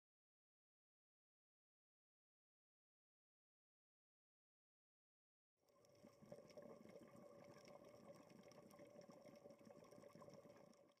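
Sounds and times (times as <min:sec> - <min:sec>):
crackle of small clicks: 0:05.6 - 0:11.0.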